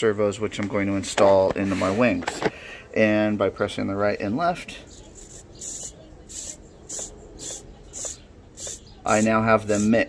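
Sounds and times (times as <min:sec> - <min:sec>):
servos whirring: 0:05.2 - 0:10.0.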